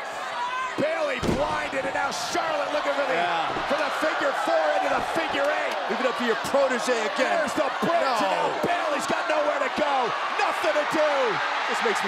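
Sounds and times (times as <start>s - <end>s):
shouting voices: 0.4s - 12.0s.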